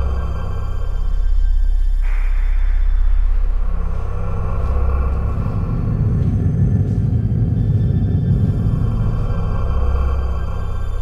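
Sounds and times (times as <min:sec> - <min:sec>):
low rumbling drone music: 0:00.0 - 0:11.0.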